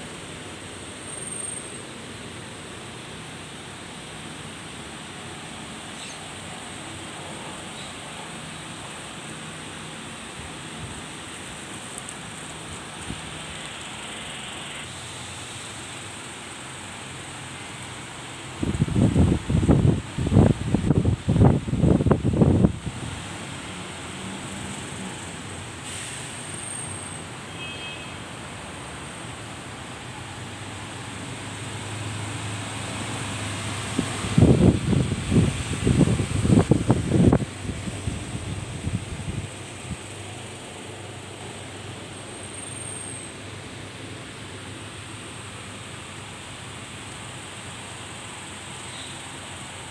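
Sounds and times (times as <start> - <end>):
bus and traffic hum: 0.0 - 49.9
wind buffeting microphone: 34.0 - 39.6.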